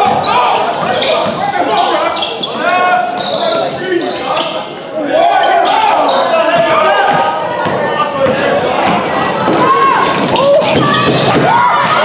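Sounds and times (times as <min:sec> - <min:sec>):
people calling out: 0:00.0 - 0:12.0.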